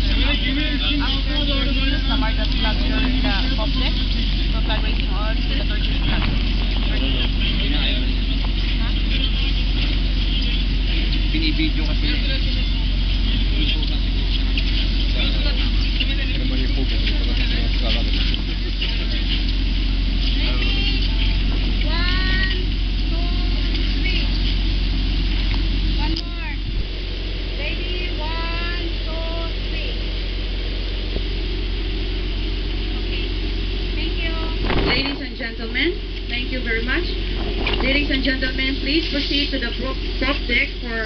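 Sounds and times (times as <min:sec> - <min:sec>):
low rumble: 0:00.0 - 0:41.0
people talking and calling out: 0:00.0 - 0:41.0.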